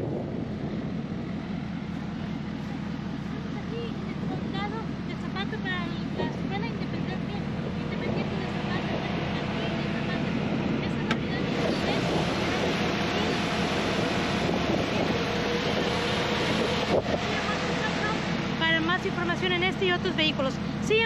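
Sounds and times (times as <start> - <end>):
engine idling: 0.0 - 21.0.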